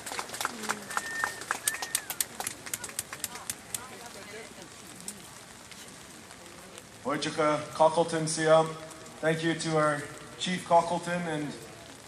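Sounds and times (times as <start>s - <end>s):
rain tapping on umbrella: 0.0s - 12.0s.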